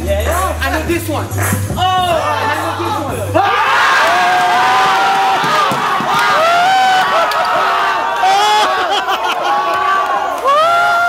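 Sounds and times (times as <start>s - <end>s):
crowd screaming and cheering: 1.8s - 11.0s.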